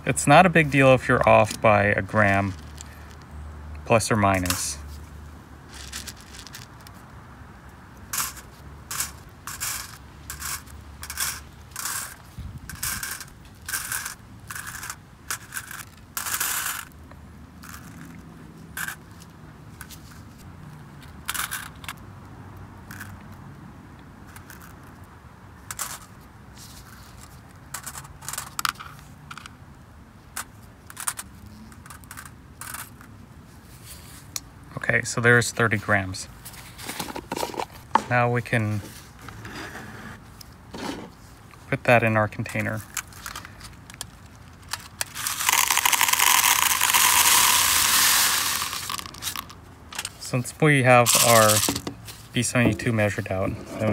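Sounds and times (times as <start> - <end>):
pellets clicking on foil: 43.0 - 50.1, 51.1 - 51.8.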